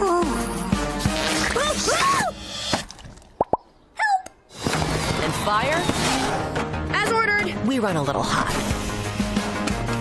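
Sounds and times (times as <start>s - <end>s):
wet plops: 2.7s - 3.7s
trailer music: 4.5s - 10.0s.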